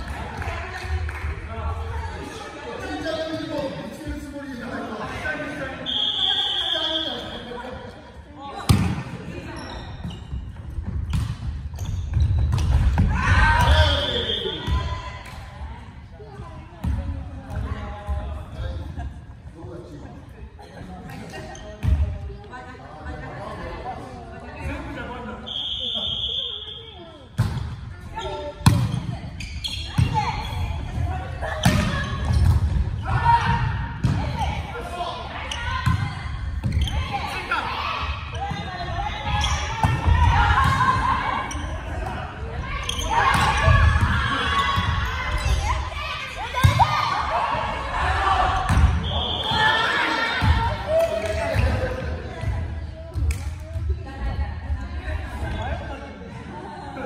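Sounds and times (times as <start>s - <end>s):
players calling and shouting: 0.0s - 20.0s, 21.0s - 57.0s.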